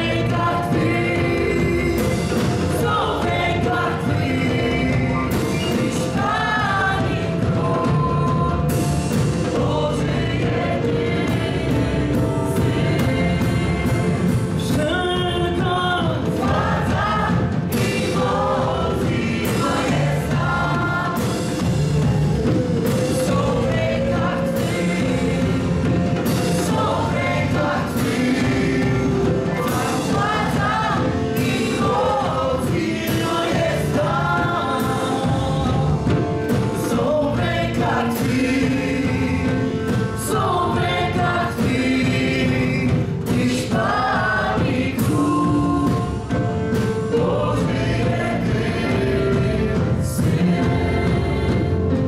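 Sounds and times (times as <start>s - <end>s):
group singing: 0.0s - 52.0s
worship band playing: 0.0s - 52.0s.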